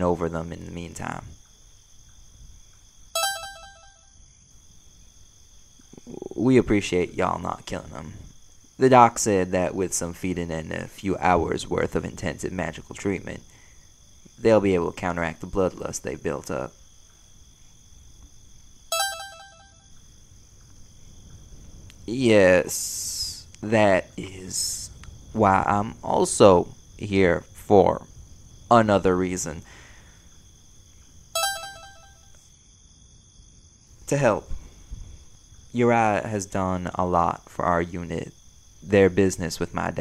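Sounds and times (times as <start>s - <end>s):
phone notification beeps: 3.2s - 4.0s, 18.9s - 19.7s, 31.4s - 32.3s.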